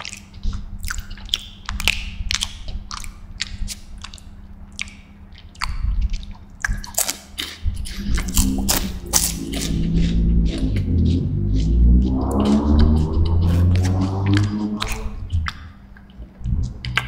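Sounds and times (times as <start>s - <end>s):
closed-mouth humming: 0.0s - 17.0s
wafer crunching while chewed: 0.0s - 17.0s.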